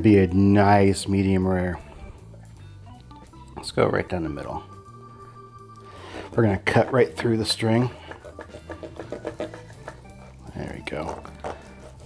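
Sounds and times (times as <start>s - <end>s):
soft background music: 0.0s - 12.0s
knife sawing through meat: 7.8s - 12.0s.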